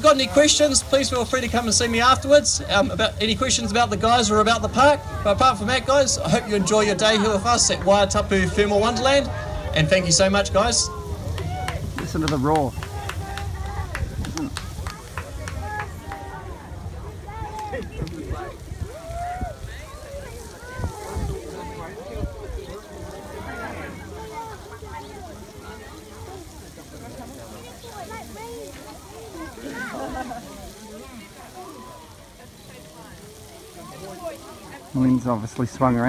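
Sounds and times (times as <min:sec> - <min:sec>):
geyser roaring: 0:00.0 - 0:36.0
people chatting: 0:00.0 - 0:36.0.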